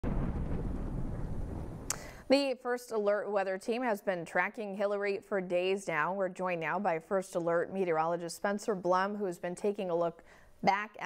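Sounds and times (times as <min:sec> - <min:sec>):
low rumbling sound effect: 0:00.0 - 0:01.9.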